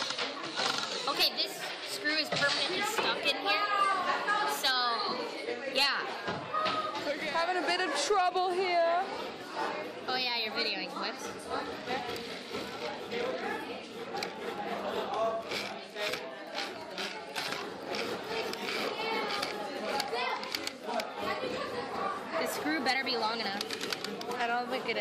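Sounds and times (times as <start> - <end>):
chatter of young voices: 0.0 - 25.0.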